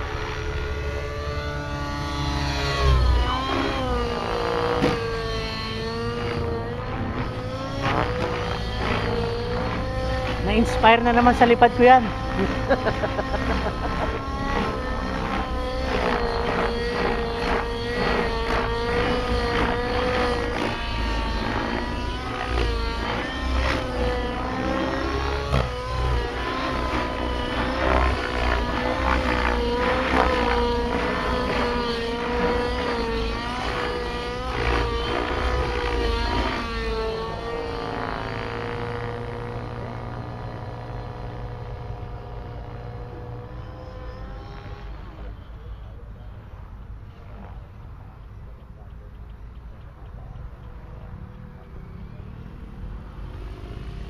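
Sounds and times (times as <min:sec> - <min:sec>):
model helicopter whine: 0:00.0 - 0:54.0.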